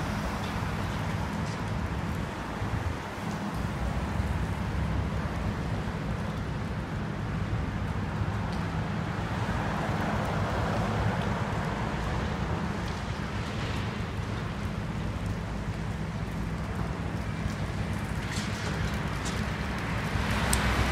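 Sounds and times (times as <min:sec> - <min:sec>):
constant rushing noise: 0:00.0 - 0:20.9.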